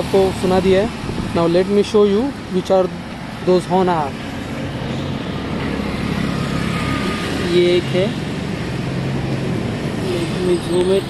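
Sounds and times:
vehicle noise rumble: 0.0s - 11.0s.

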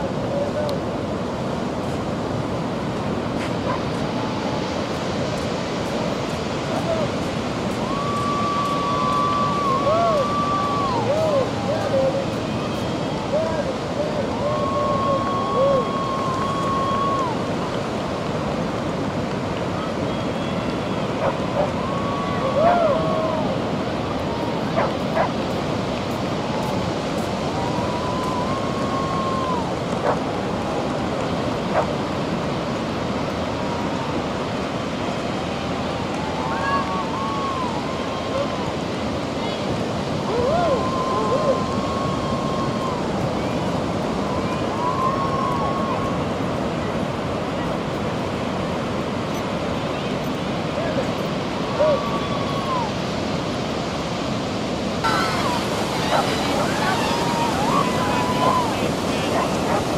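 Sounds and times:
ocean surf breaking: 0.0s - 59.9s
wind on microphone: 0.0s - 59.9s.

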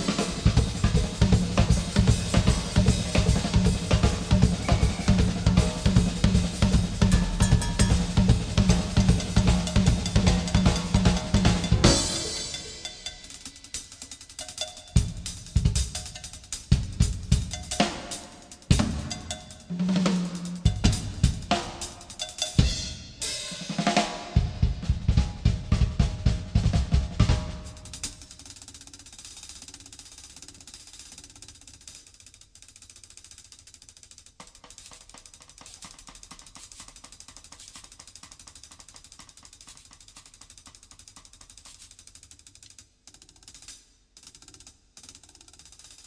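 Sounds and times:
drum kit fills: 0.0s - 31.3s.

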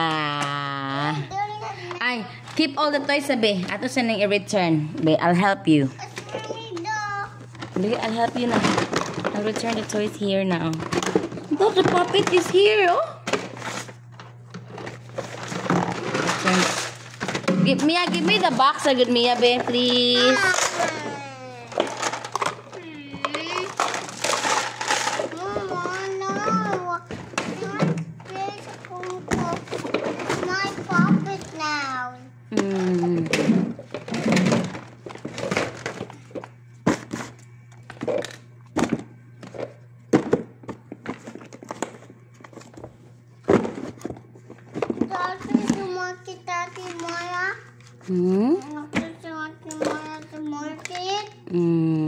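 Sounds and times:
steady low hum: 0.0s - 52.0s
child talking and singing: 1.1s - 2.1s, 6.0s - 7.5s, 20.0s - 21.9s, 25.3s - 32.4s, 45.0s - 47.7s, 48.6s - 51.5s.

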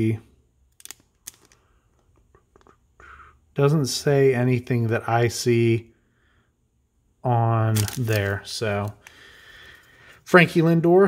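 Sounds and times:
plastic wrapper crackling: 0.7s - 1.7s, 7.7s - 9.2s.

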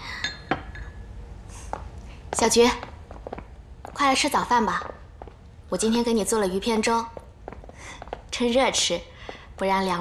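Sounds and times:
porcelain dishes clinking: 0.1s - 1.1s.

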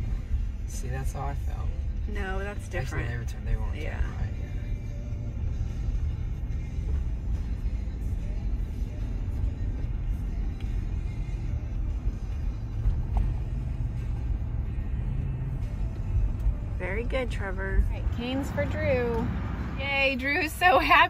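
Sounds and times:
music playing: 0.0s - 21.0s
road and engine rumble in car: 0.0s - 21.0s.

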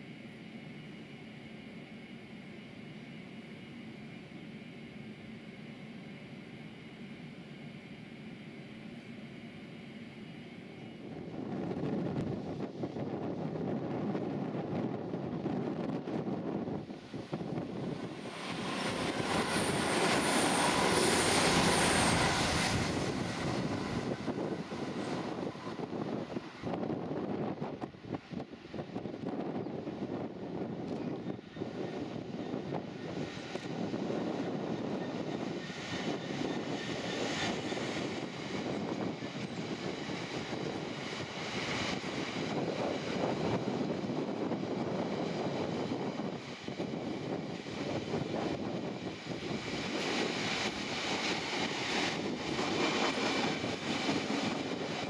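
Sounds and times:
diesel locomotive running: 0.0s - 55.0s.

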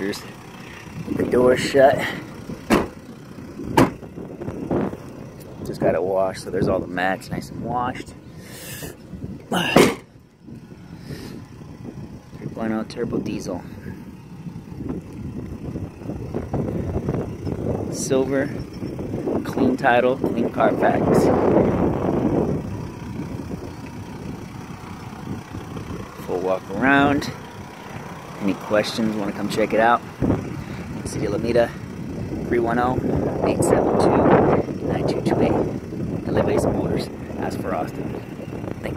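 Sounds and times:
diesel engine idling: 0.0s - 38.9s
man sighing: 8.4s - 10.1s.

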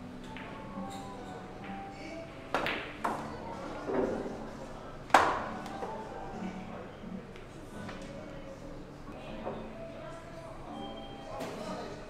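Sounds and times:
pool cue striking ball: 5.1s - 5.8s.

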